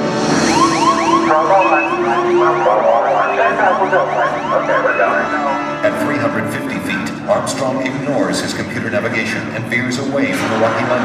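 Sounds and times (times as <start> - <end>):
dense busy music backing: 0.0 - 11.0
warbling siren-like alarm tone: 0.1 - 5.8.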